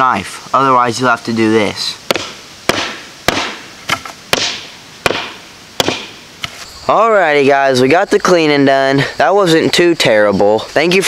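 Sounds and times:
sharp chopping blows: 0:02.1 - 0:06.6.

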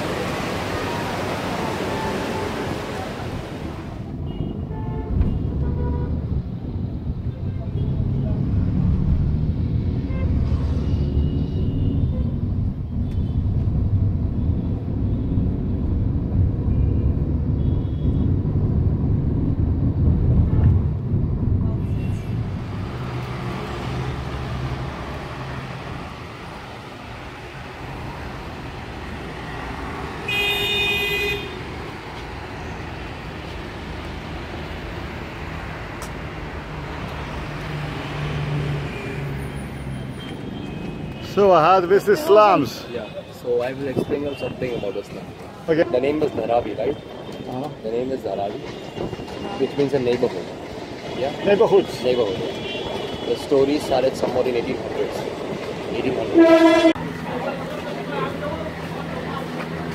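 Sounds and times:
engine and road rumble: 0:00.0 - 0:42.2, 0:52.0 - 0:59.9
car horn toots: 0:30.2 - 0:31.6, 0:56.4 - 0:57.0
loud horn blast: 0:30.2 - 0:31.7, 0:56.3 - 0:57.0.

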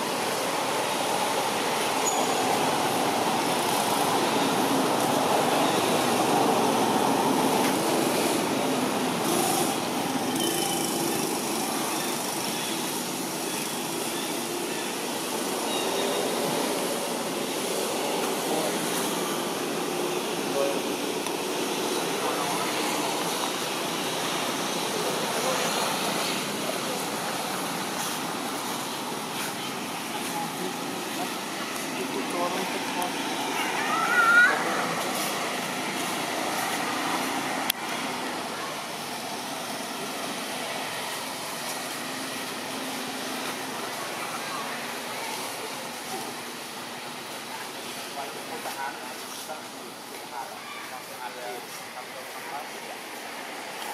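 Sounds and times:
outdoor background noise: 0:00.0 - 0:53.9.

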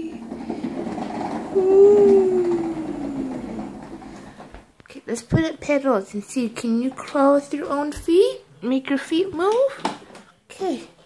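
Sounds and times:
plastic wheels rattling on tiles: 0:00.0 - 0:04.7
person calling out: 0:01.6 - 0:03.6.

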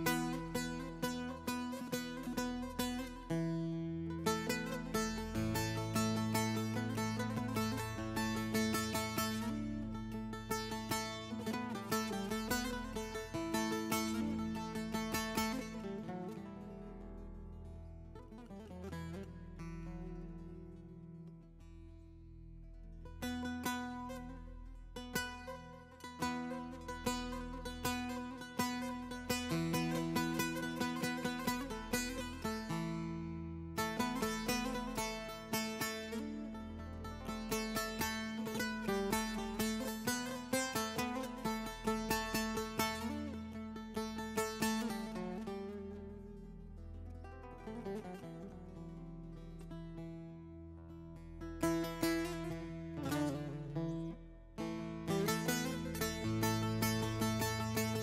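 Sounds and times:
long-necked lute playing folk melody: 0:00.0 - 0:58.0.

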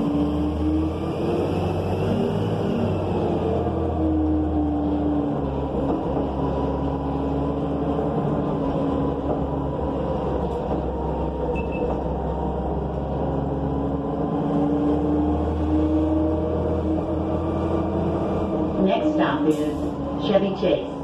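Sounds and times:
bus engine drone: 0:00.0 - 0:21.0
road noise: 0:00.0 - 0:21.0.

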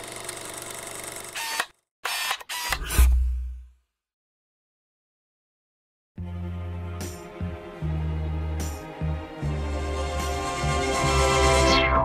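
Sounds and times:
camera mechanism whirr: 0:00.0 - 0:03.2.

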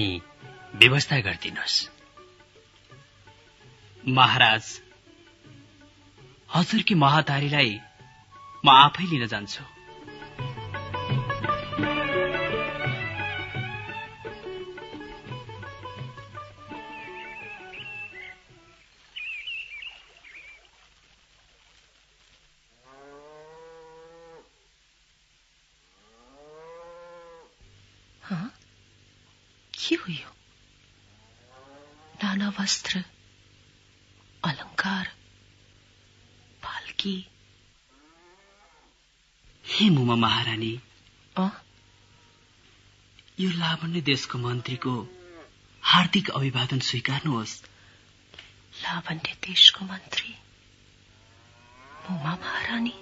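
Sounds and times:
cow mooing: 0:22.8 - 0:24.5, 0:26.0 - 0:27.6, 0:31.1 - 0:32.2, 0:37.9 - 0:38.9, 0:42.0 - 0:42.5, 0:44.6 - 0:45.6, 0:51.1 - 0:53.0.

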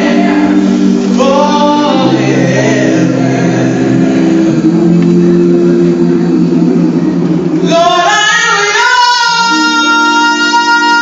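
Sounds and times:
women's vocal group singing harmony: 0:00.0 - 0:06.0
high voice gliding: 0:00.0 - 0:10.6.

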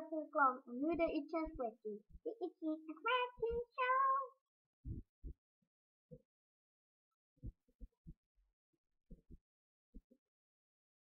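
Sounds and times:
child singing a vowel: 0:02.4 - 0:04.3.

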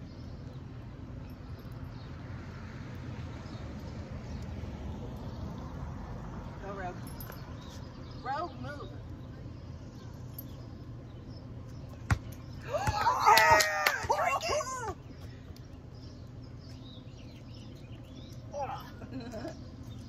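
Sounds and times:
woman shrieking and whooping: 0:12.6 - 0:15.0.

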